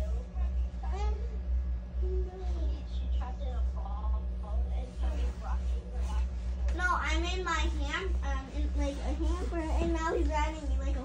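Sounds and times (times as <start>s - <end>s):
woman's voice: 0.0s - 1.4s, 2.0s - 11.0s
faint talk: 0.0s - 11.0s
steady low hum: 0.0s - 11.0s.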